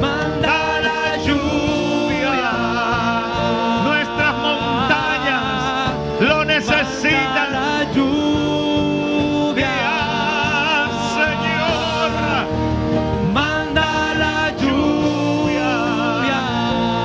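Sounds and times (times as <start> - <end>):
man singing into a microphone: 0.0 - 12.5, 13.2 - 17.0
drums: 0.0 - 17.0
electric guitar: 0.0 - 17.0.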